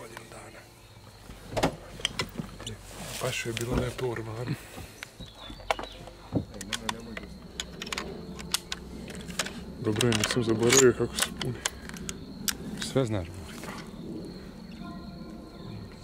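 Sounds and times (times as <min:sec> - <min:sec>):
rifle handling clicks and knocks: 0:02.0 - 0:02.7, 0:05.0 - 0:13.0
low voices: 0:02.4 - 0:16.0.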